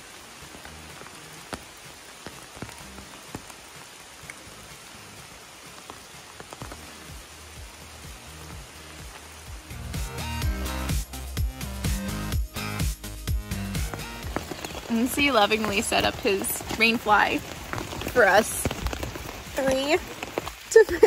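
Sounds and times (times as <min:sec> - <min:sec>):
heavy rain on water and leaves: 0:00.0 - 0:21.0.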